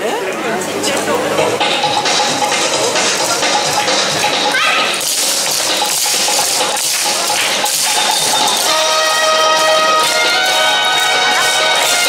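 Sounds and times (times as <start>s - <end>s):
loud dance music: 1.1s - 12.0s
wooden clappers clacking: 1.6s - 12.0s.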